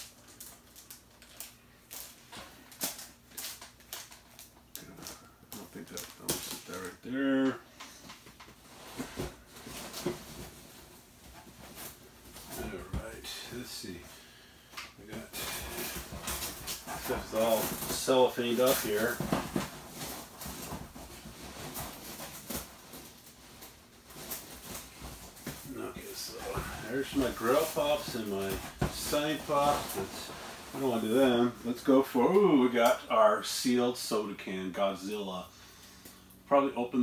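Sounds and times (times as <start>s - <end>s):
plastic packaging crinkling: 0.0s - 7.0s, 15.1s - 31.8s.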